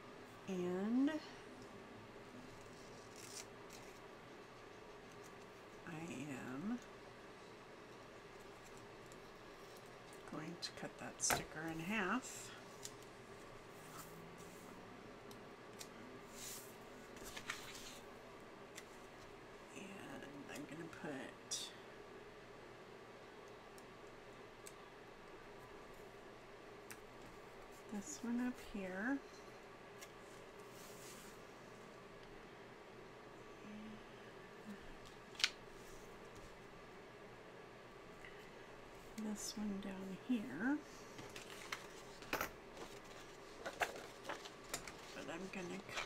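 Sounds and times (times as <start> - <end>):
paper rustling: 17.2 - 18.0, 41.2 - 45.2.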